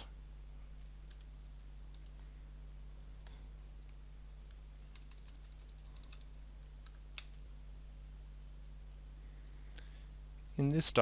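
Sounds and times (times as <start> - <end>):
faint low hum: 0.0 - 11.0
keyboard typing: 0.8 - 2.2, 4.4 - 7.4.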